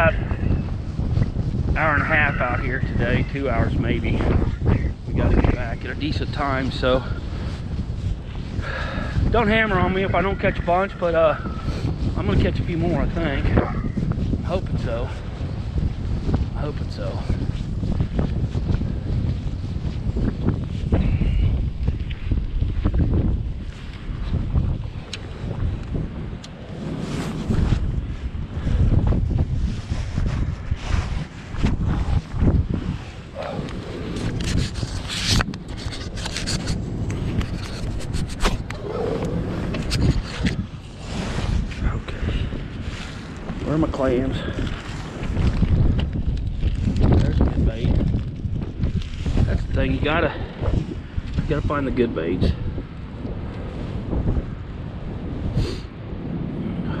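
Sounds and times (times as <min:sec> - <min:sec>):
wind rumbling on microphone: 0:00.0 - 0:57.0
fishing tackle clicks and rustles: 0:33.2 - 0:38.8.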